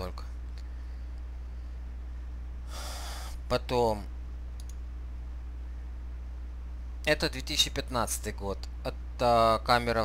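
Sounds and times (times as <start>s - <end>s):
steady low hum: 0.0s - 10.0s
man breathing into microphone: 2.7s - 3.4s.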